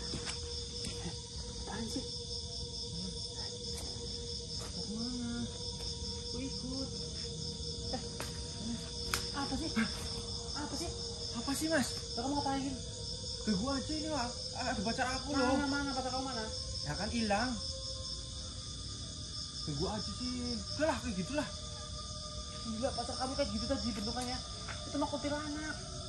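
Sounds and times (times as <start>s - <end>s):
crickets chirring: 0.0s - 26.0s.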